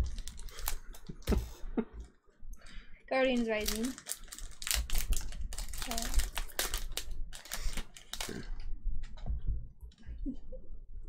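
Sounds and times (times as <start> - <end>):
foil wrapper crinkling: 0.0 - 1.1, 3.2 - 8.5.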